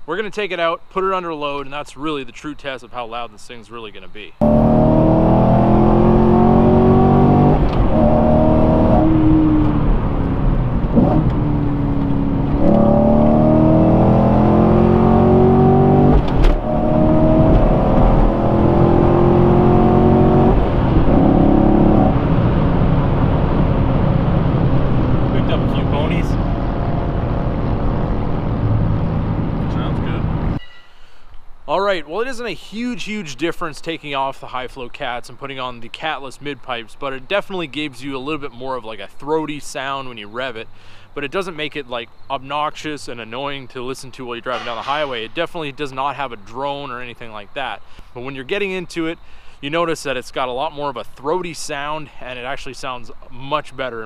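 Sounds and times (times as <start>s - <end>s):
car engine accelerating: 4.4s - 30.6s.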